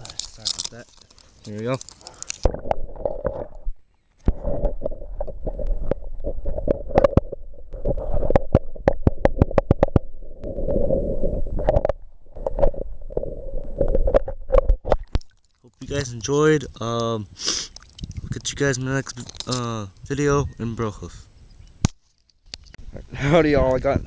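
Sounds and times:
underwater gurgling rumble: 2.5 - 15.3.

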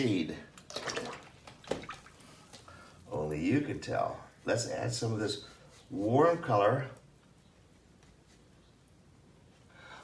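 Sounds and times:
quiet handling sounds: 2.2 - 9.7.

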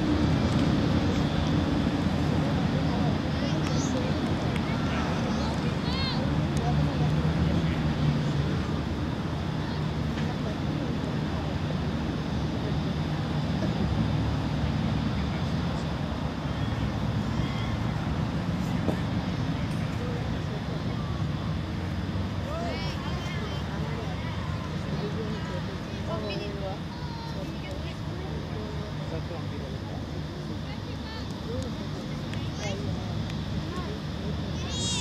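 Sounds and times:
faint distant voices: 0.0 - 35.0
low rumbling background noise: 0.0 - 35.0.

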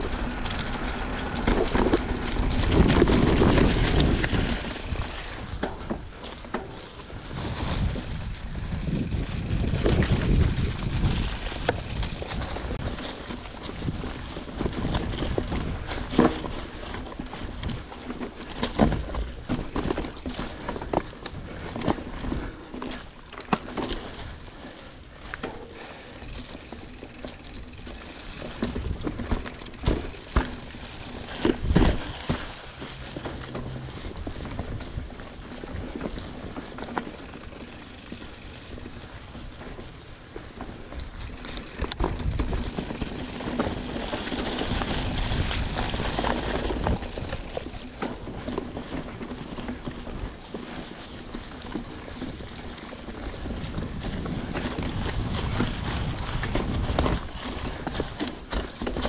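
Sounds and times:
bike knocks and rattles on rocks: 0.0 - 59.0
bike tyres rolling through dry leaves: 0.0 - 59.0.

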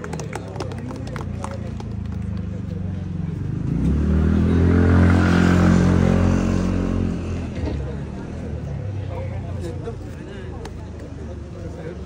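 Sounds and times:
vehicle engine passing by: 0.5 - 9.2.

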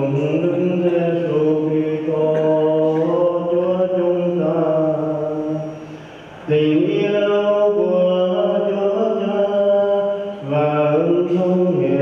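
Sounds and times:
man chanting liturgy: 0.0 - 12.0.

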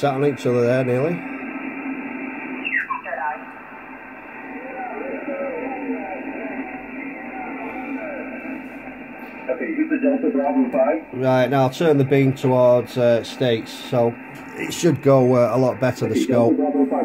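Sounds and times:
radio band hiss: 0.0 - 17.0
radio voice signals: 2.5 - 3.5, 4.4 - 17.0.

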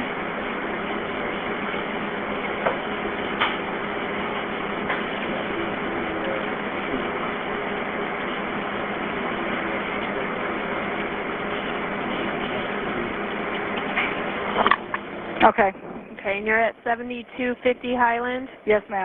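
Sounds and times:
telephone line hiss and hum: 0.0 - 19.0.

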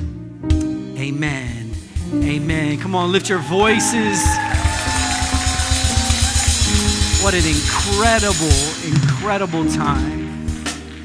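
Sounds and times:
held keyboard chords: 0.0 - 11.0.

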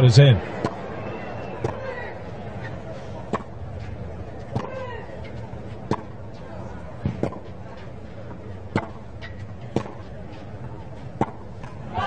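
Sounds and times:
crowd background: 0.0 - 12.0
racket striking tennis ball: 0.6 - 0.8, 3.2 - 3.6, 4.5 - 6.2, 7.0 - 7.6, 8.3 - 10.1, 11.0 - 11.8.

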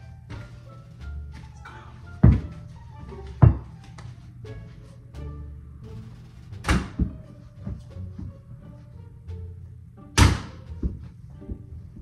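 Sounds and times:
background music with steady beat: 0.0 - 12.0
ball bouncing: 2.2 - 2.6, 3.2 - 4.1, 6.6 - 8.4, 10.2 - 12.0.

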